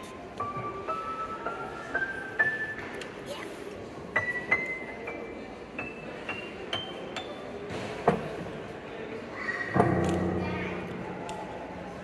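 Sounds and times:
piano notes: 0:00.3 - 0:03.0, 0:04.1 - 0:08.2.

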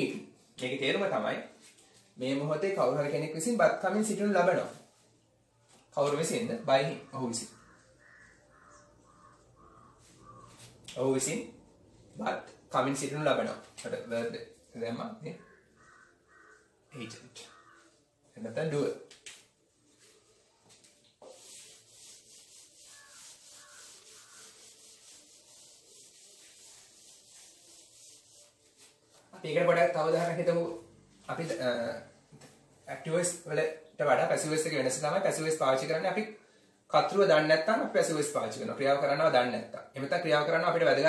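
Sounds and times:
marker pen squeaking on whiteboard: 0:05.8 - 0:12.7, 0:13.4 - 0:29.3.

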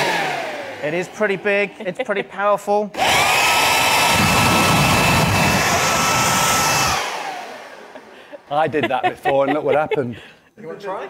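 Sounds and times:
leaf blower running: 0:00.0 - 0:01.7, 0:02.9 - 0:08.4.

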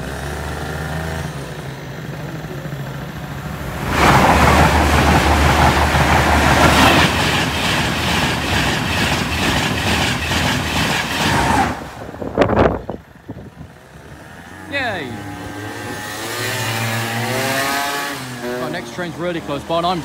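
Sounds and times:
high-speed trains passing: 0:01.9 - 0:13.3.

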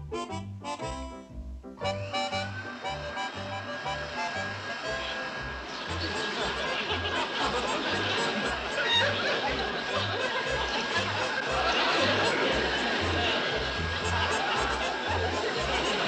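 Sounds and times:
comic background music: 0:00.1 - 0:16.0.

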